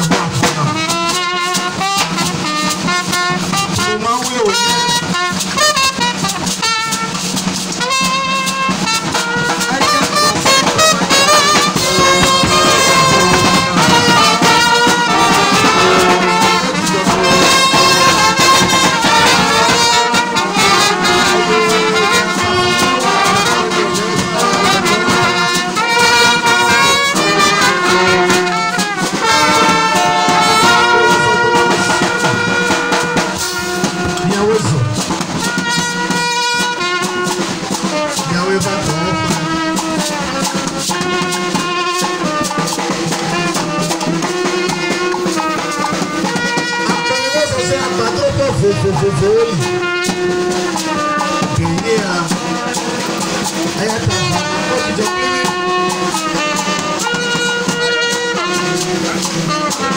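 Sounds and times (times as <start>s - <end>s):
brass band playing: 0.0s - 59.9s.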